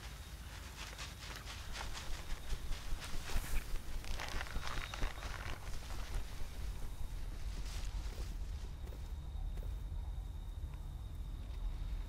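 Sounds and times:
rustling of leaf litter: 0.0s - 9.0s
steady low rumble: 1.6s - 12.0s.

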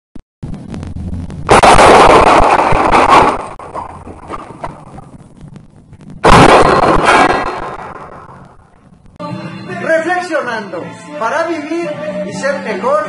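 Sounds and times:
loud crash-like burst: 0.4s - 5.3s, 6.1s - 8.7s
low rumble: 0.4s - 9.2s.

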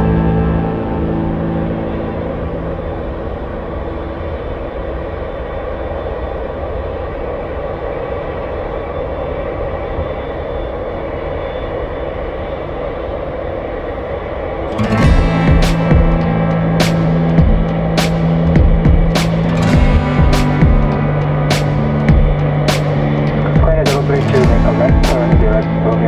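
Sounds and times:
airliner low rumble: 0.0s - 26.0s.

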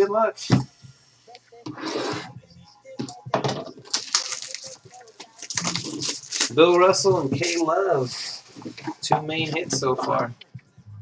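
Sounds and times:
plastic shrink wrap crinkling: 3.8s - 8.8s.

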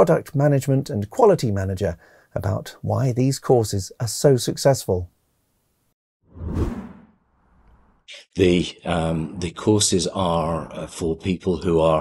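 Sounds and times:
whoosh sound effect: 6.3s - 7.9s.

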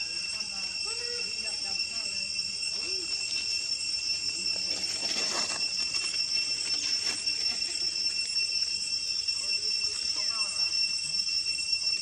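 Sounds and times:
insects buzzing drone: 0.0s - 12.0s
rustles: 2.8s - 8.8s.

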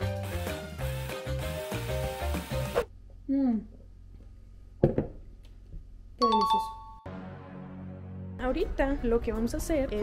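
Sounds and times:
knock: 4.8s - 5.2s.

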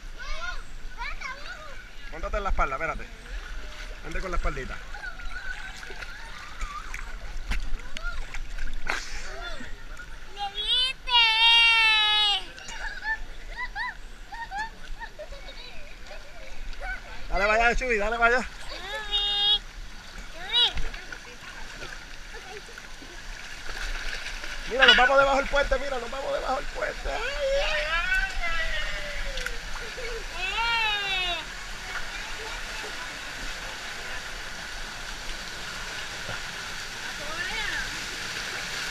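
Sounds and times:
pool water sloshing: 0.0s - 38.9s
faint voices: 3.0s - 17.5s, 24.3s - 38.9s.

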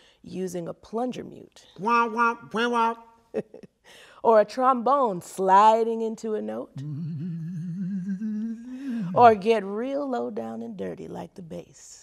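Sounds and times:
person humming trombone imitation: 1.8s - 3.0s, 6.8s - 9.4s.

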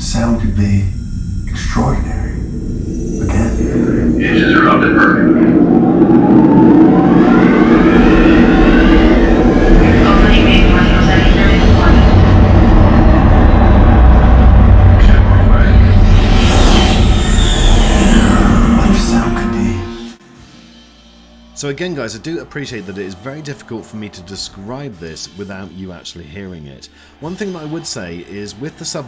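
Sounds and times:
music: 0.0s - 5.1s, 9.5s - 29.0s
deep bass rumble: 0.0s - 20.2s
rising whooshes: 0.0s - 20.2s
spaceships flying past: 0.0s - 20.2s.

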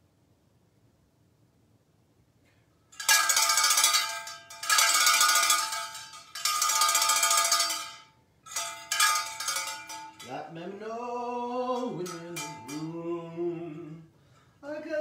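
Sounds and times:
hand bell clanging: 3.0s - 10.6s, 11.7s - 13.1s.

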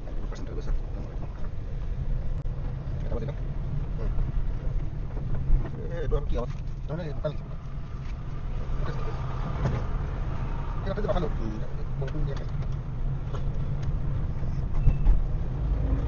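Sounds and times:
car cabin low rumble: 0.0s - 16.0s.

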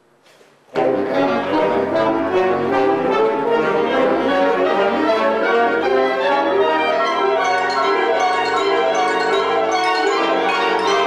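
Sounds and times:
wind band playing loudly: 0.8s - 11.0s
bell-like percussion: 7.4s - 11.0s.

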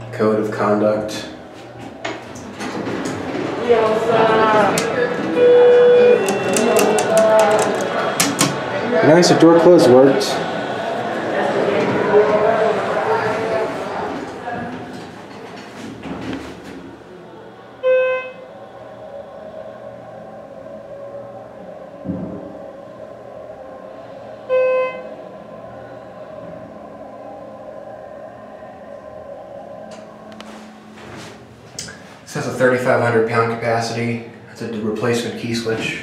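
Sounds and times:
elevator hum: 0.0s - 36.0s
elevator chime beeps: 5.0s - 7.6s, 17.8s - 18.4s, 24.5s - 25.1s.

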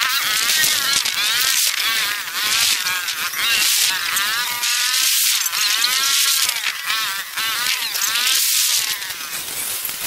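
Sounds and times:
high-pitched buzz with wavering whines: 0.0s - 10.0s.

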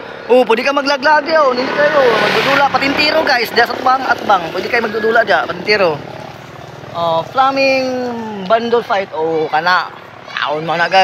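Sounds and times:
vehicle passing on road: 0.0s - 11.0s
man talking: 0.3s - 6.1s, 6.9s - 11.0s.

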